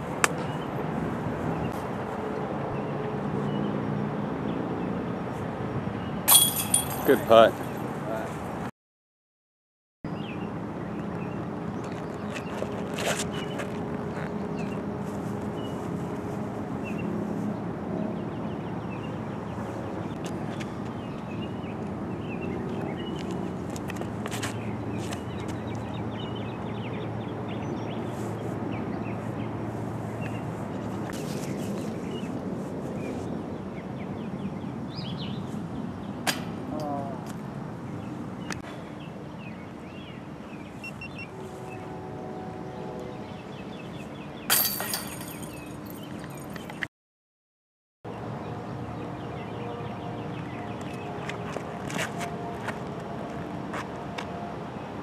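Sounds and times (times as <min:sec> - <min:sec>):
outdoor background noise: 0:00.0 - 0:08.7, 0:10.1 - 0:46.9, 0:48.1 - 0:55.0
disc hitting basket chains: 0:06.3 - 0:07.3, 0:44.5 - 0:46.7.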